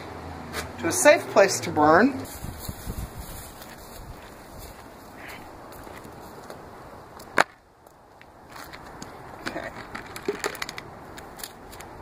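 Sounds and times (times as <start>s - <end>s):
rustling handling noise: 2.3s - 6.6s.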